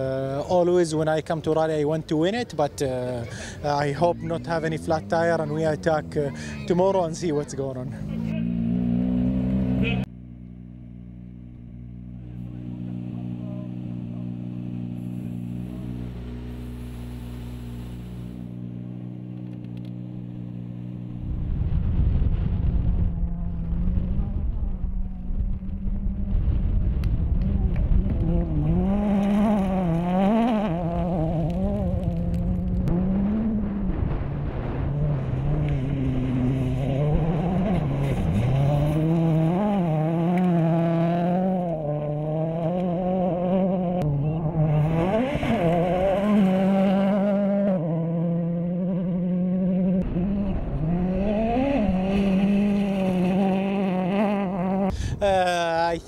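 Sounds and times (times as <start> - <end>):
rally car engine revving: 3.0 - 55.0
steady low hum: 10.0 - 29.2.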